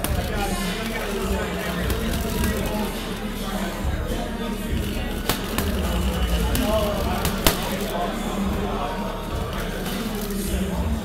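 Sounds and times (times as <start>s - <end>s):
glove punching heavy bag: 0.0s - 0.5s, 1.3s - 3.0s, 3.9s - 7.9s
people talking: 0.0s - 11.0s.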